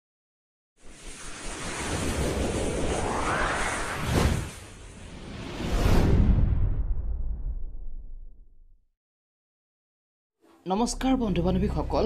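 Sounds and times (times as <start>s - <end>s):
whoosh rush of noise: 0.8s - 8.2s
tone sweeping upward: 1.0s - 6.0s.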